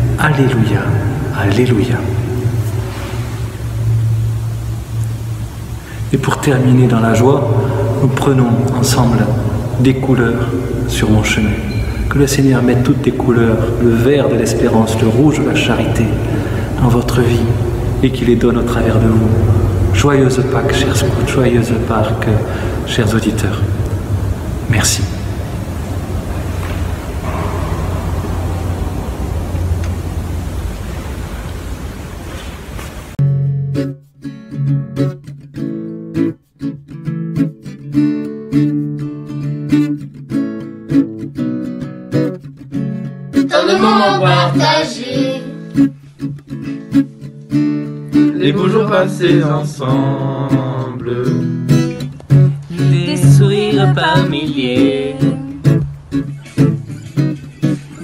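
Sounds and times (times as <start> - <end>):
faint hiss: 0.0 - 33.2
steady low hum: 0.0 - 33.2.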